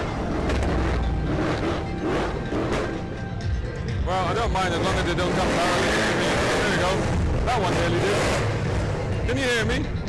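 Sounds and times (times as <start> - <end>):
exhaust cracks: 0.0 - 3.3.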